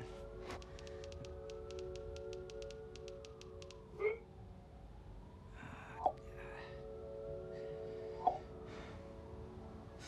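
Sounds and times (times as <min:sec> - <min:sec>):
low music drone: 0:00.0 - 0:04.2, 0:05.3 - 0:10.0
phone keyboard taps: 0:00.5 - 0:03.8.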